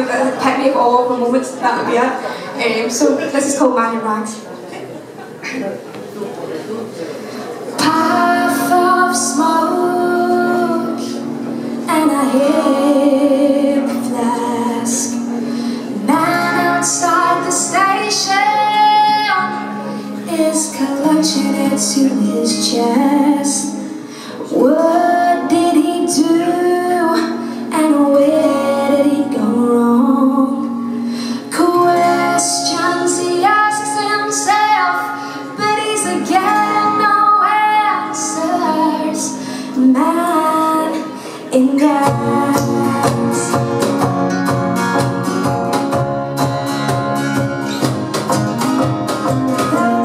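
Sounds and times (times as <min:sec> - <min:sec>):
live acoustic band music: 0:00.0 - 0:50.0
woman singing: 0:07.8 - 0:44.0, 0:49.6 - 0:50.0.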